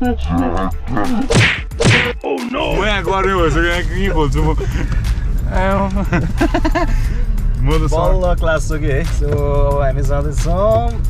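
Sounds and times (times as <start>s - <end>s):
sharp whack hits with low tone: 1.3s - 2.3s.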